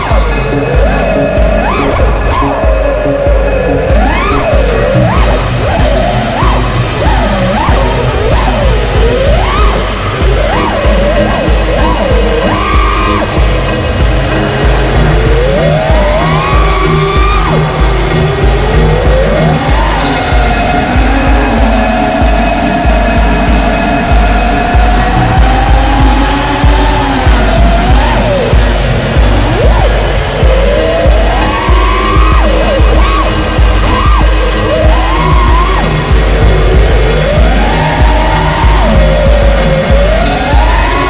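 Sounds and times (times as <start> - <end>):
background music with steady beat: 0.0 - 41.0
drone motors whining: 0.0 - 41.0.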